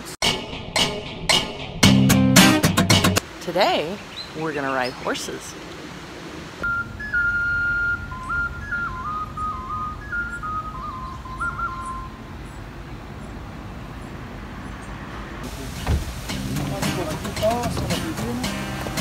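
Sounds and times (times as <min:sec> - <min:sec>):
high whistle-like melody: 0:06.6 - 0:12.2.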